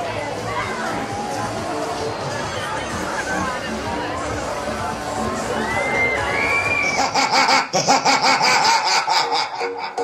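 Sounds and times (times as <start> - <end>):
crowd bustle with voices: 0.0 - 10.0
electronic dance music: 0.1 - 10.0.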